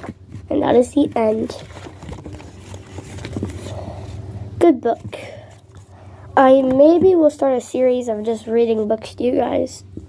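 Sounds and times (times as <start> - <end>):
book rustling and knocks: 0.0 - 3.8
steady low hum: 0.0 - 10.0.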